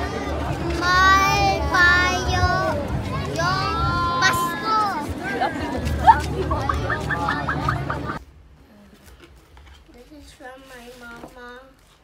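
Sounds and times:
crowd hubbub: 0:00.0 - 0:08.3
children shouting excitedly: 0:00.8 - 0:08.2.

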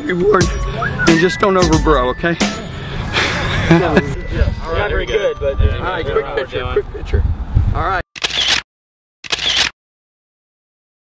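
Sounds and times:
camera shutter: 0:08.2 - 0:09.8.

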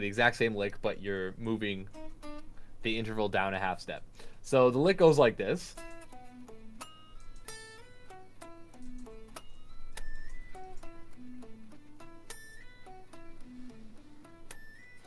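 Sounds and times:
electric guitar lick: 0:05.7 - 0:15.0.

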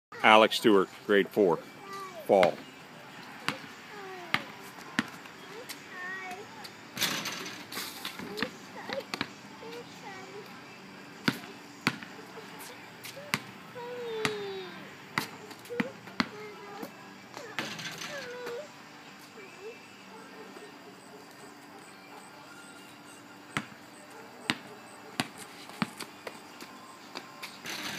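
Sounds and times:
basketball bouncing on concrete: 0:03.5 - 0:03.7, 0:04.3 - 0:05.7, 0:08.2 - 0:09.4, 0:11.2 - 0:12.1, 0:13.1 - 0:14.5, 0:15.2 - 0:16.6, 0:23.5 - 0:23.8, 0:24.4 - 0:26.3.

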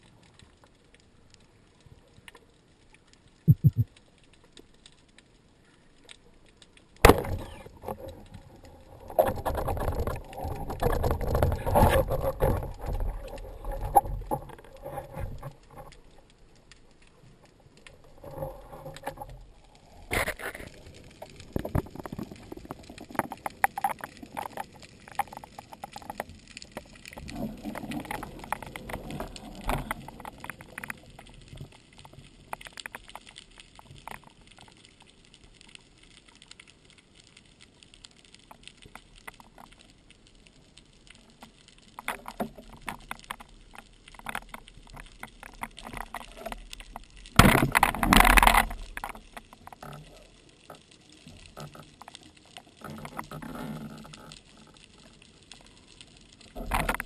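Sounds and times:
clicks and crackles: 0:00.0 - 0:57.0.

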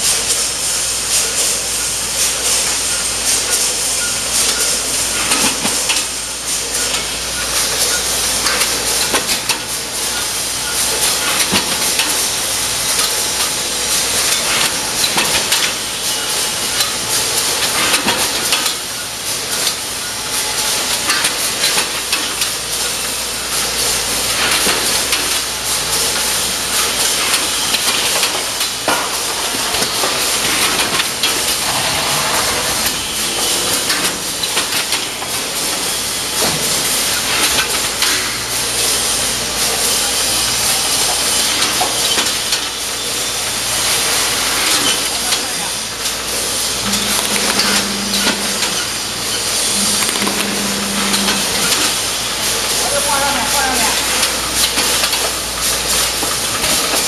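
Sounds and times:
packing machine hissing: 0:00.0 - 0:57.0.

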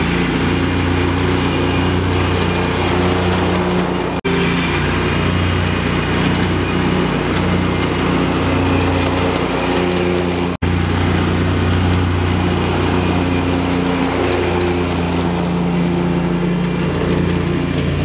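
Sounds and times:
lawn mower engine running: 0:00.0 - 0:18.0.

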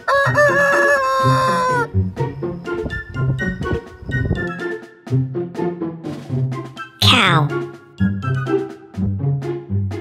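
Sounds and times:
rooster crowing: 0:00.1 - 0:01.7.

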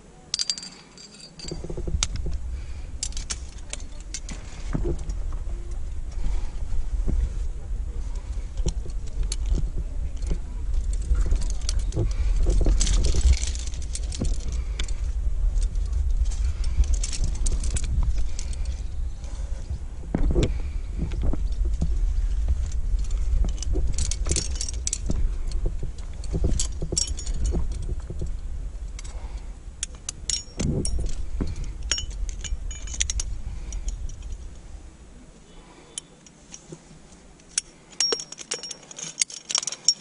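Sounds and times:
climbing gear jangling: 0:00.3 - 0:06.6, 0:08.1 - 0:19.6, 0:20.2 - 0:34.5, 0:37.4 - 0:40.0
steady low rumble: 0:01.4 - 0:38.8.

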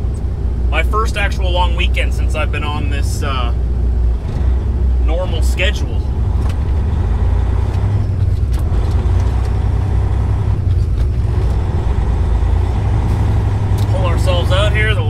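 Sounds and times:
truck diesel engine rumbling: 0:00.0 - 0:15.0.

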